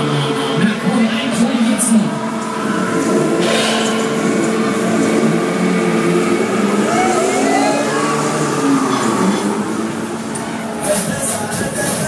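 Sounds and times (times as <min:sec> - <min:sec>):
fairground ride machinery hum: 0:00.0 - 0:12.0
funfair din: 0:00.0 - 0:12.0
wavering tones: 0:02.0 - 0:11.5.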